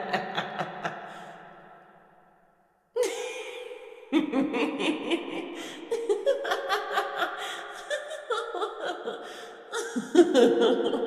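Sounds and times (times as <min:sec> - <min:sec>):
woman cackling laugh echoing: 0:00.0 - 0:01.2, 0:03.0 - 0:11.0.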